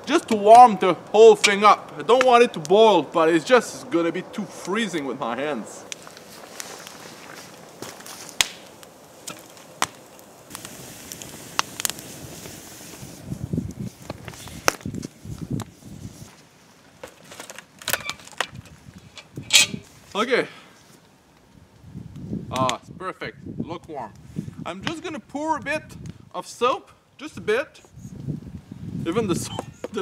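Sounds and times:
campfire crackling: 0.0 - 30.0
fire popping: 0.0 - 30.0.

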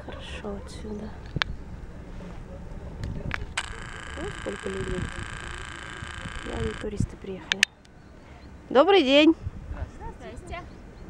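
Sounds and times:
wind rumbling on microphone: 0.0 - 7.6, 8.5 - 11.0
high-pitched mechanical whine: 3.4 - 7.8.

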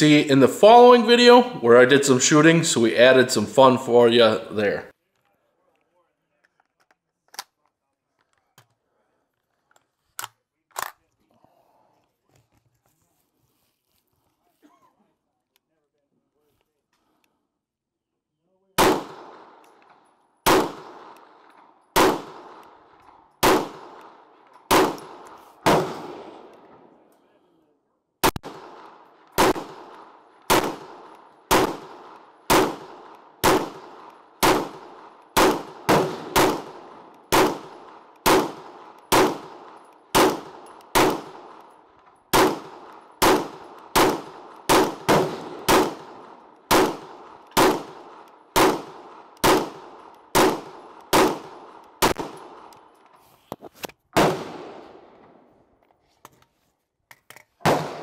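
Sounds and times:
gunshots with echo: 18.8 - 27.1, 28.2 - 52.9, 54.2 - 55.6, 57.6 - 58.0.

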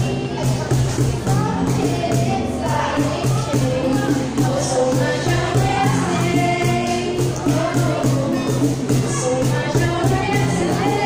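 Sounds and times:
cajon beat: 0.0 - 11.0
women singing: 0.0 - 11.0.

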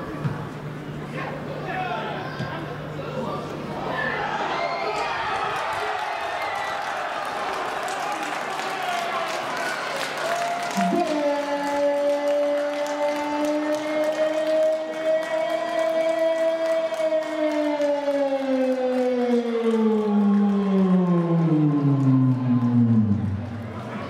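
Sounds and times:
loud siren-like musical tone: 10.7 - 23.9.

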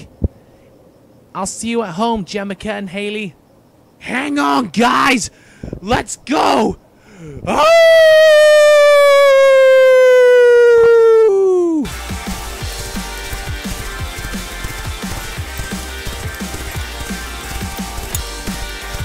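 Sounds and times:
cartoon character yelling: 7.4 - 11.9
background music with steady beat: 11.9 - 19.0.

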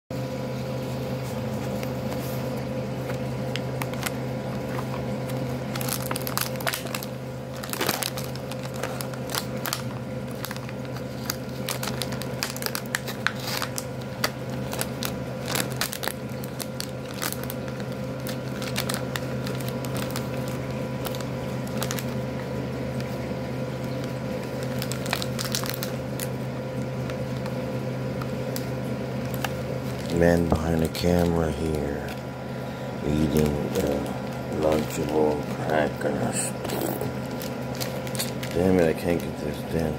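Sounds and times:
steady low hum: 0.1 - 39.9
plastic packaging crinkling: 1.5 - 39.9.

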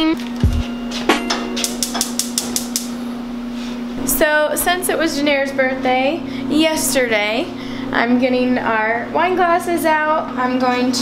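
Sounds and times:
gas burner igniter clicking: 1.6 - 2.9.

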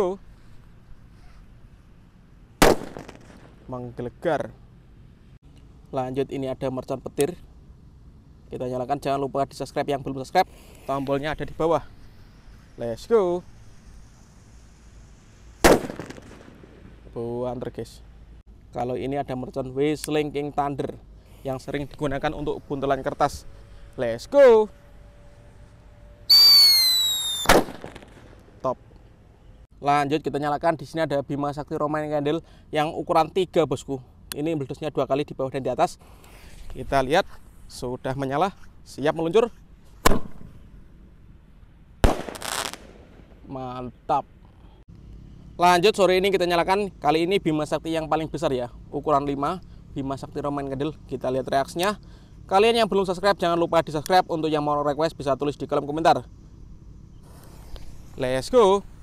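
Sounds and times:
loud firecracker bang: 2.6 - 3.7, 15.6 - 17.0, 26.3 - 28.4, 40.0 - 40.6, 42.0 - 43.5
firecracker fuse hissing: 10.4 - 16.8, 26.3 - 28.4, 42.1 - 43.0, 57.2 - 58.2
firecracker whistle: 26.2 - 28.2.

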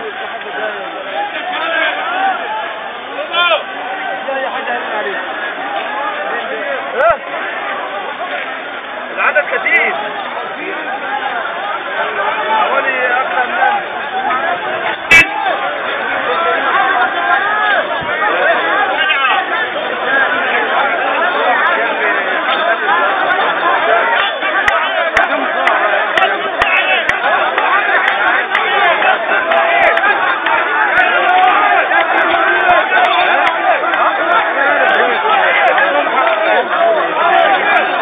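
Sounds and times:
crowd of men talking: 0.0 - 38.0.

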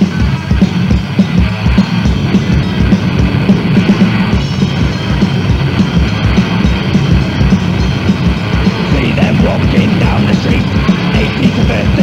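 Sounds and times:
distorted guitars: 0.0 - 12.0
steady drum beat: 0.0 - 12.0.

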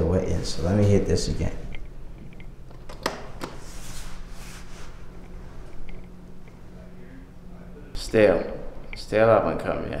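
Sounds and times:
steady low hum: 0.0 - 10.0
soft rustling: 3.6 - 5.9.

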